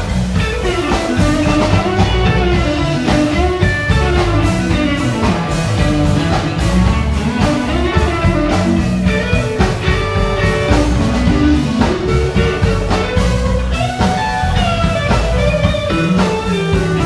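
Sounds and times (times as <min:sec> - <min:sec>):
bass: 0:00.0 - 0:17.0
drum kit: 0:00.0 - 0:17.0
electric guitar: 0:00.0 - 0:17.0.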